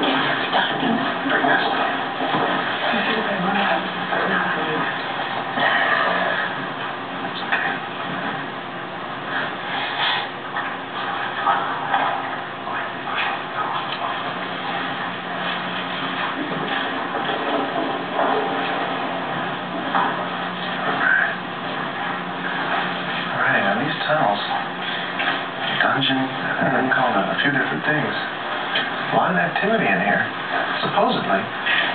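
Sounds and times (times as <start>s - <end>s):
muffled television sound: 0.0s - 31.9s
steady hum: 0.0s - 31.9s.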